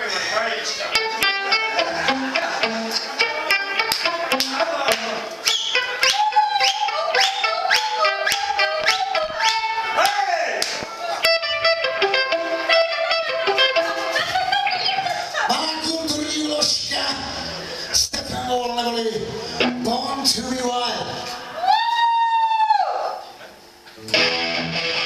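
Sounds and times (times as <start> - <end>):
electric guitar: 0.7 - 10.0, 10.7 - 15.5, 19.2 - 20.3, 23.9 - 25.0.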